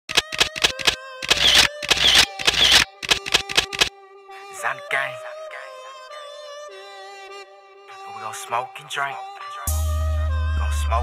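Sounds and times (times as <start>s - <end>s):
sharp clicks: 0.0s - 3.9s.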